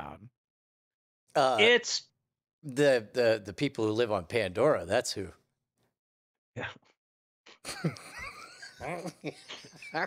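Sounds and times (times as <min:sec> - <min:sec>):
men laughing: 0:07.7 - 0:10.0.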